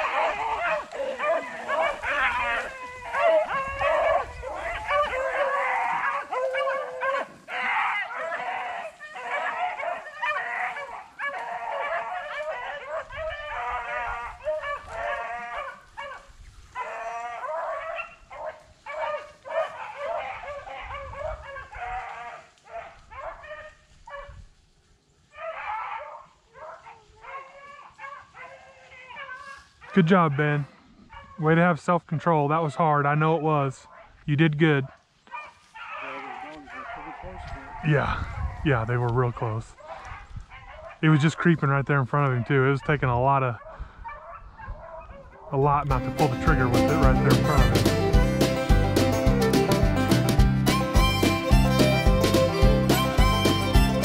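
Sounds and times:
beagles baying: 0:00.0 - 0:24.3, 0:39.8 - 0:54.0.

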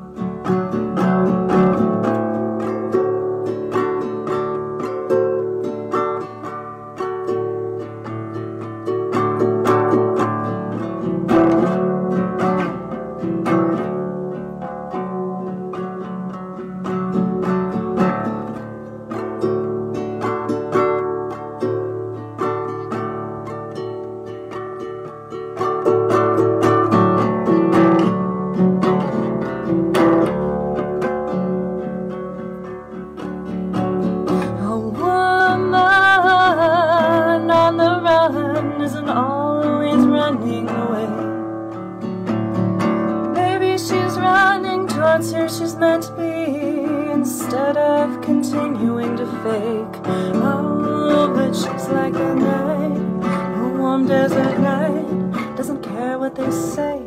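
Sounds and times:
acoustic guitar strumming: 0:00.0 - 0:57.0
wavering melody with vibrato: 0:00.0 - 0:57.0.

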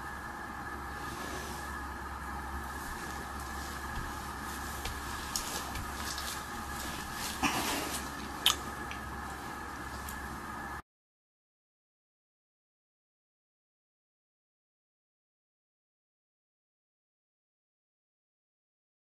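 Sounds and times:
steady background hum: 0:00.0 - 0:10.8
rustles and light taps: 0:02.7 - 0:10.3.

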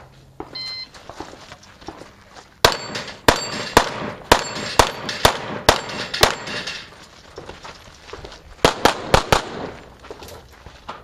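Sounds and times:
pistol shots: 0:02.6 - 0:06.8, 0:08.6 - 0:09.8.

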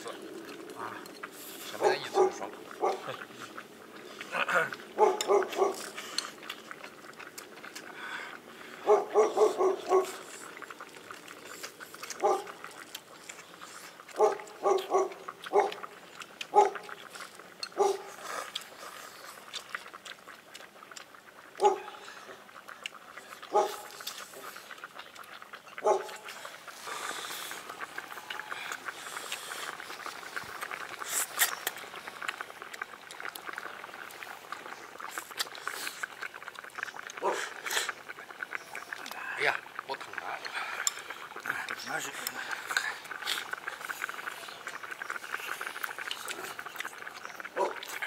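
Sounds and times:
dog barking: 0:01.8 - 0:03.1, 0:05.0 - 0:05.8, 0:08.8 - 0:10.2, 0:12.2 - 0:12.5, 0:14.2 - 0:15.8, 0:16.5 - 0:16.8, 0:17.8 - 0:18.1, 0:21.6 - 0:22.0, 0:23.5 - 0:23.9, 0:25.8 - 0:26.1, 0:37.2 - 0:37.5, 0:47.6 - 0:47.8.

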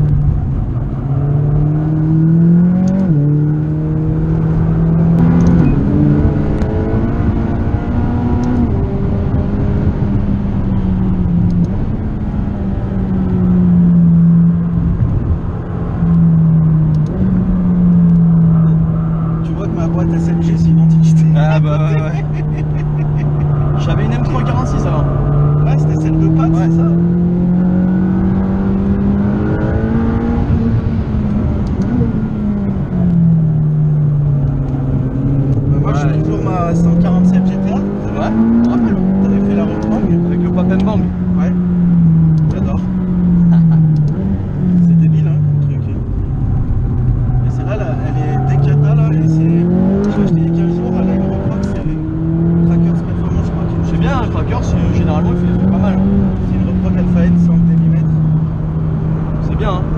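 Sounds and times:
car engine accelerating from cabin: 0:00.0 - 0:59.9.

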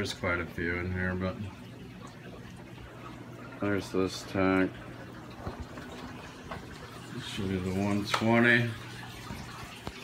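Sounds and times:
aquarium filter hum: 0:00.0 - 0:10.0
water trickling and bubbling: 0:00.0 - 0:10.0.

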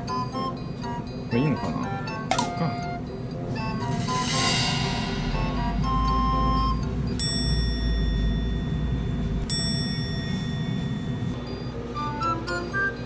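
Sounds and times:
low background music: 0:00.0 - 0:09.4
bright bell-like chime strikes: 0:03.9 - 0:10.8.

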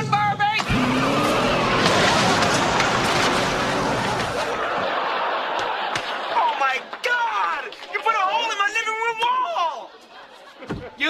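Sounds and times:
wall crashing with clattering debris: 0:00.9 - 0:04.6.

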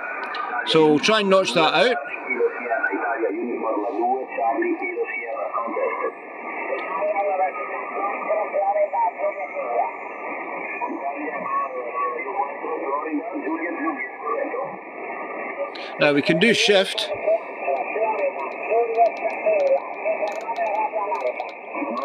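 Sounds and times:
radio band noise: 0:00.0 - 0:02.7, 0:15.8 - 0:22.0
radio voice talking: 0:00.7 - 0:02.0, 0:15.8 - 0:17.3.

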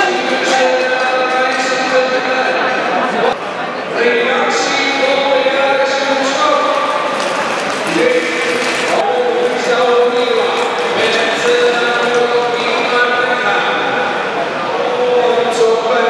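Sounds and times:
voice speaking in large hall: 0:00.0 - 0:16.0.

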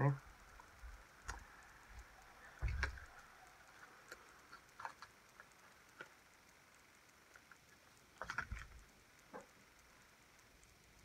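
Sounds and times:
light clicks and taps: 0:00.5 - 0:09.9.

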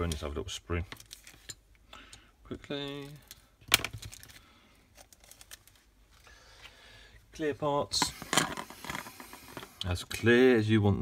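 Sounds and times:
plastic bag crinkling: 0:02.8 - 0:05.9.

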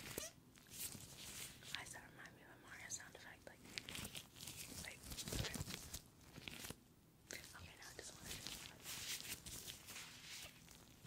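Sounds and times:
rubber gloves rubbing and crinkling: 0:00.0 - 0:02.0, 0:03.0 - 0:11.0.

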